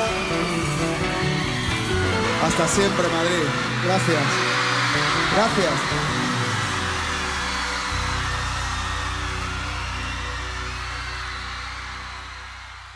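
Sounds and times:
crowd cheering: 0.0s - 12.9s.

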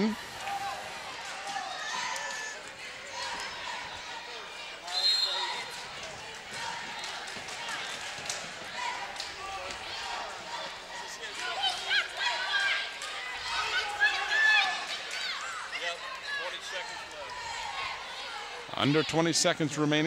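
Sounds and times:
crowd voices: 0.0s - 20.0s.

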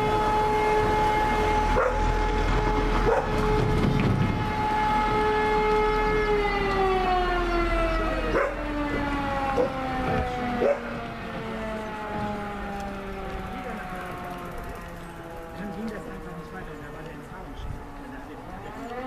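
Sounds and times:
alarm siren wailing: 0.0s - 19.0s
dog barking: 1.8s - 2.0s, 3.0s - 3.3s, 8.3s - 8.6s, 9.6s - 9.8s, 10.6s - 11.0s.

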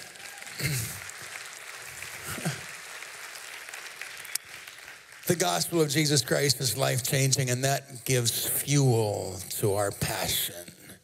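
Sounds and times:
congregation applauding: 0.0s - 6.7s.

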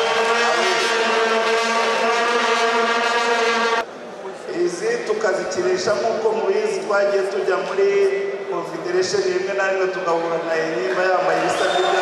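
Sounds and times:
horn long steady note: 0.0s - 3.9s.

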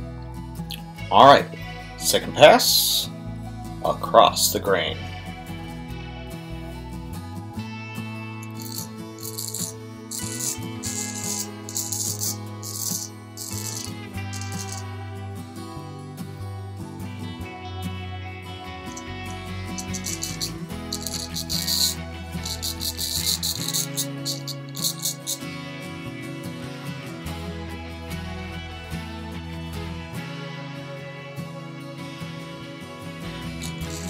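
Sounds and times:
soft acoustic guitar music: 0.0s - 34.0s
razor scraping stubble: 8.4s - 14.9s, 18.9s - 25.6s, 33.6s - 34.0s.

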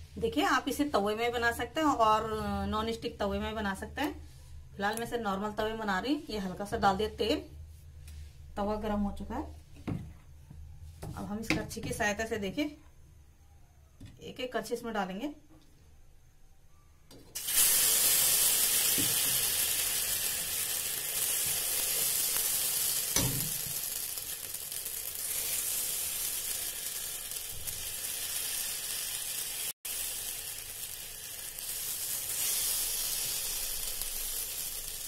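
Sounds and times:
batter sizzling on a griddle: 17.4s - 35.0s.

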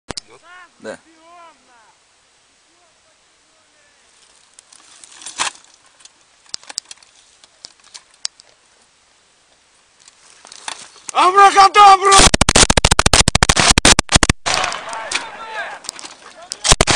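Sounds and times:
man yelling: 0.3s - 2.0s, 11.1s - 12.3s, 14.8s - 16.6s
dry brush rustling: 3.9s - 8.9s, 9.5s - 11.2s, 14.6s - 16.7s.

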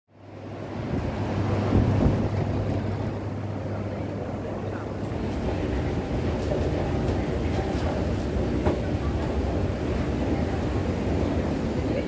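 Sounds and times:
low hum and rumble of hall: 0.1s - 12.0s.

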